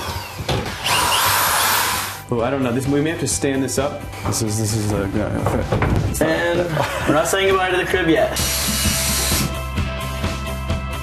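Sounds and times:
power drill running: 0.0 - 2.2, 8.4 - 9.5.

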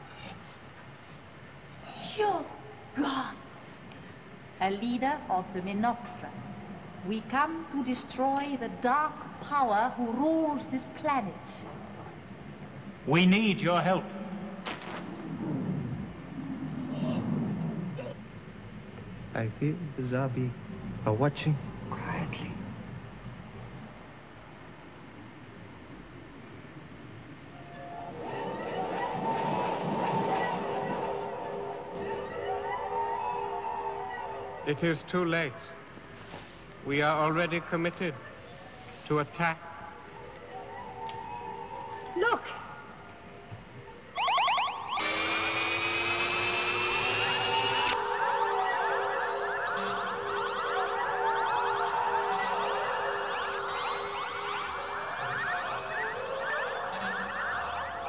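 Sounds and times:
low rumble: 14.2 - 19.6
droning electronic tones: 44.9 - 58.0.

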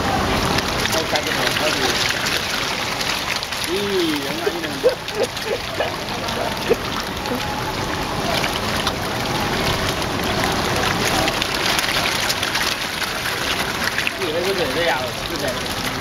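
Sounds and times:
fish splashing in pond: 0.0 - 16.0.

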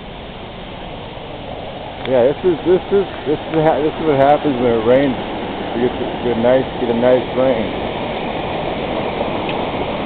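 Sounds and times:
water rushing: 0.0 - 10.0.

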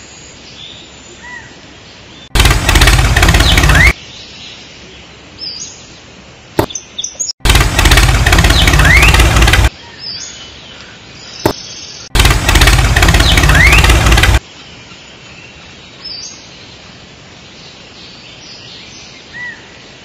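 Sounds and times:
birds chirping: 0.0 - 16.8
engine sound effect: 2.3 - 4.0, 7.4 - 9.7, 12.1 - 14.4.

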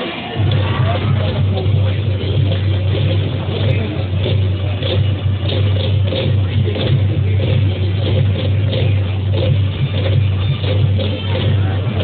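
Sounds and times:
cheering music: 0.0 - 12.0
heavy low rumble: 0.0 - 12.0
stadium crowd din: 0.0 - 12.0.

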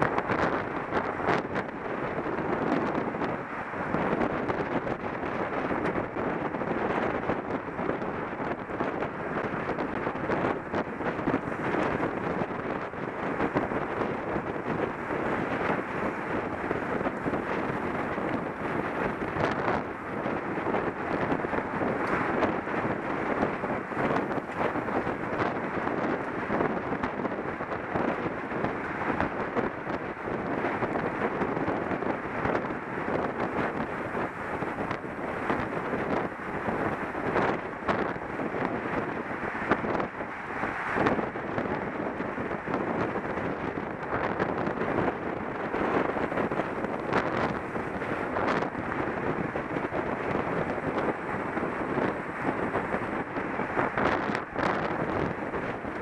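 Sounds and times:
wind noise on microphone: 0.0 - 56.0.

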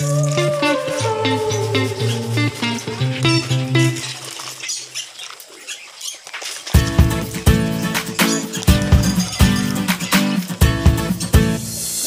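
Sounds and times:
guitar music: 0.0 - 4.4, 6.8 - 12.0.

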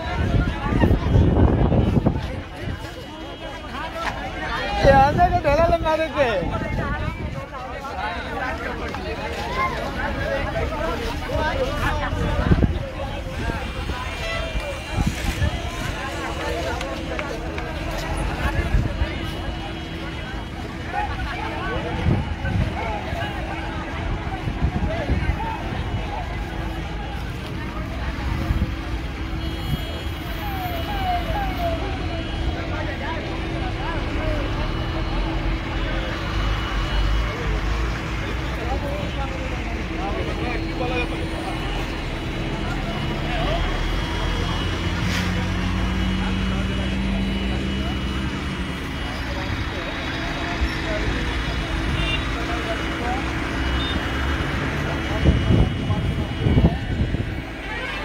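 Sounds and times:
bystanders chatting: 0.0 - 58.0
heavy vehicle engines rumbling: 0.0 - 58.0
roadway traffic: 0.0 - 58.0.

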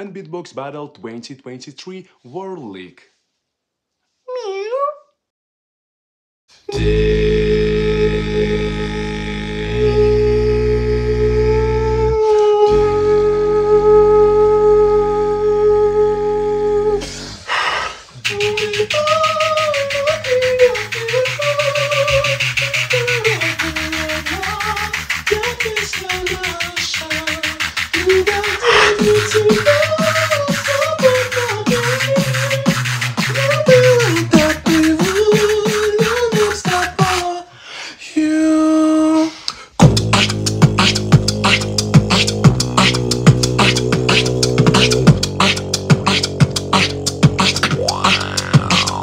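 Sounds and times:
flute-like vocal note: 6.7 - 17.3, 18.2 - 23.7, 28.4 - 31.3, 38.4 - 49.0
low vocal drone: 6.7 - 17.4, 18.2 - 27.4, 28.0 - 32.4, 39.8 - 49.0
beatboxing: 6.7 - 37.6, 38.2 - 49.0
breathy vocal burst: 16.9 - 18.3, 28.6 - 29.3, 39.2 - 49.0.

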